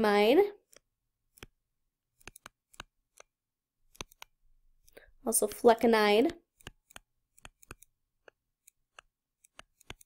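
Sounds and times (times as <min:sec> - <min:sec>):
stylus tapping a tablet screen: 0:02.2 - 0:04.4, 0:06.3 - 0:10.0.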